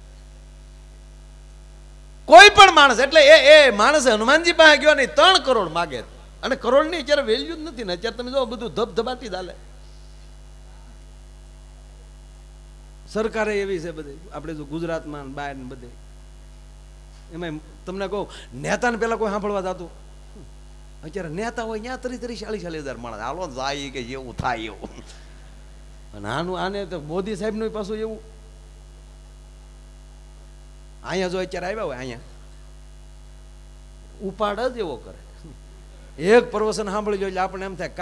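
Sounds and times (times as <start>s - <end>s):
electrical mains hum: 0.0s - 38.0s
man's voice: 2.3s - 9.6s, 21.0s - 25.1s.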